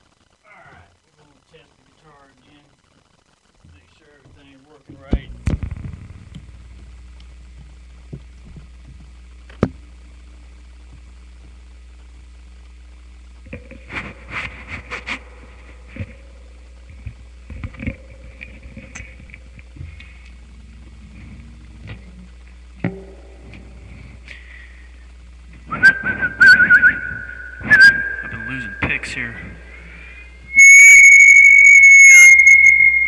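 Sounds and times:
sustained whistled tone: 25.7 - 33.0.

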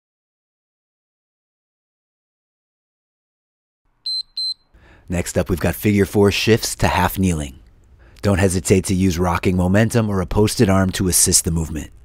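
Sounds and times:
interval timer short high beeps: 4.1 - 4.6.

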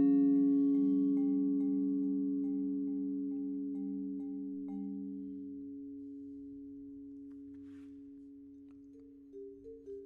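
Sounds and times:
vibraphone notes ringing: 0.0 - 10.0.

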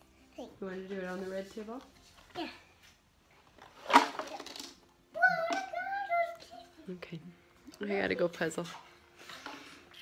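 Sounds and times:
child's drawn-out voice: 5.2 - 6.8.

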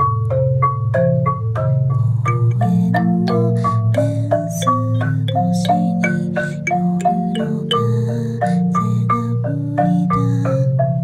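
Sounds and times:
kalimba melody: 0.0 - 11.0
marimba melody: 0.0 - 11.0.

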